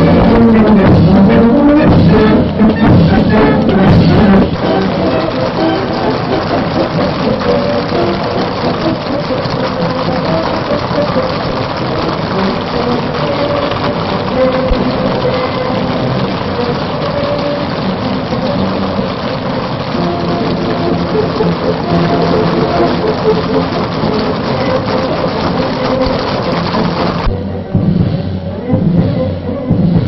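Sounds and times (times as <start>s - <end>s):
crackling hiss: 0.0s - 29.3s
band music playing held notes: 0.0s - 30.0s.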